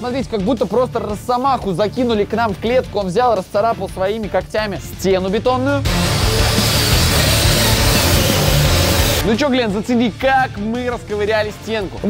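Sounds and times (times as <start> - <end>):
loud rock music: 0.0 - 12.0
concrete saw grinding: 5.9 - 9.3.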